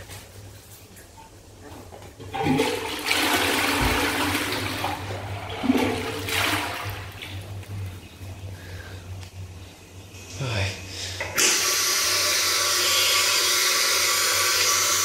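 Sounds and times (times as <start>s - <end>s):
toilet flushing: 2.2s - 8.4s, 11.0s - 15.0s.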